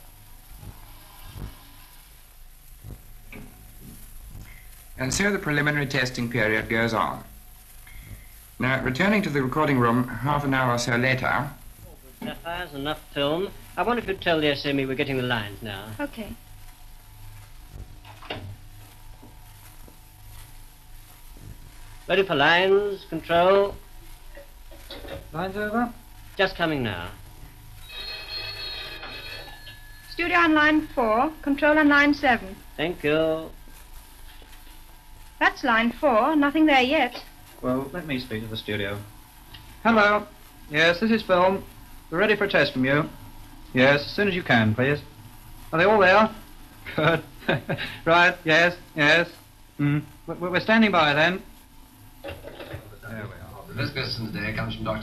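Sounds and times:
recording hiss and crackle: 0.0 - 55.0
bell-like signal ringing: 27.8 - 30.3.

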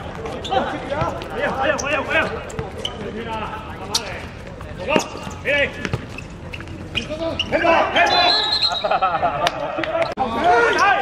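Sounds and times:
football kicked and bouncing: 4.0 - 7.2
players shouting: 7.0 - 11.0.

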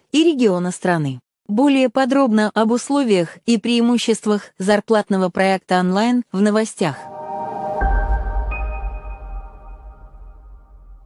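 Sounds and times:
deep low rumble: 7.0 - 11.0
electronic logo sting: 7.0 - 11.0.

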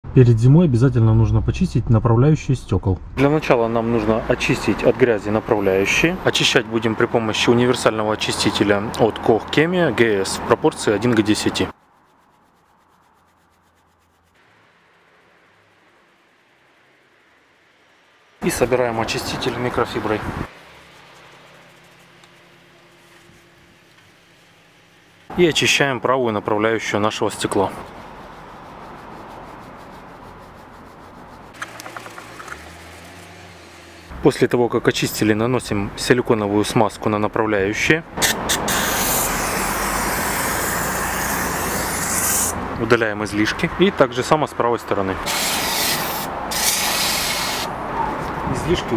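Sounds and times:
brush scrubbing rubber: 10.8 - 14.4, 19.0 - 25.7, 26.8 - 34.2, 38.2 - 42.6, 45.2 - 47.7
aerosol can spraying hiss: 38.5 - 42.6, 45.3 - 47.7.

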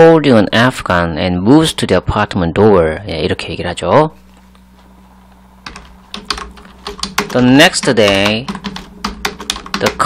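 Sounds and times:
faint steady hum: 0.0 - 10.0
keyboard keys clicking: 5.6 - 10.0.

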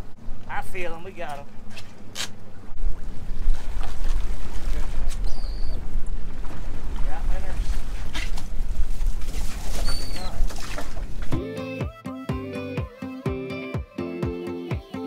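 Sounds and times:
wind rumble on microphone: 2.6 - 11.3
seabird calls: 5.0 - 6.0, 9.7 - 10.5
water splashing off net: 9.2 - 11.3.

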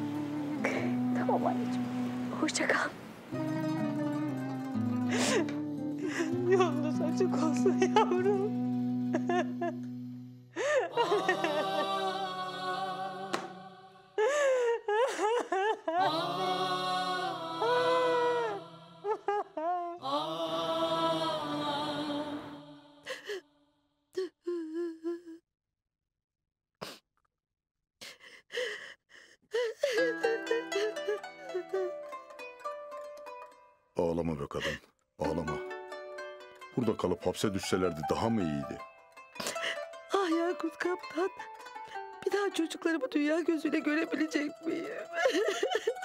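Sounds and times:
soft background music: 0.0 - 9.8, 35.2 - 45.7
woman sobbing and wailing: 0.5 - 1.7, 5.0 - 12.5, 14.2 - 16.5, 17.3 - 20.2, 23.1 - 23.4, 24.2 - 25.4, 28.0 - 32.2, 39.4 - 46.0.

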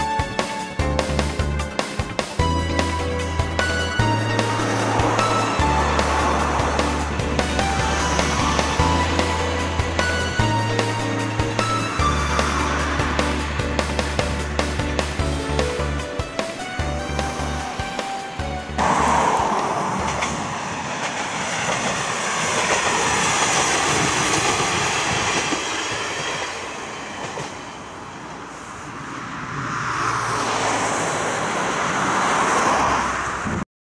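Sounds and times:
background music: 0.0 - 20.3
train running past on rails: 0.0 - 33.6.

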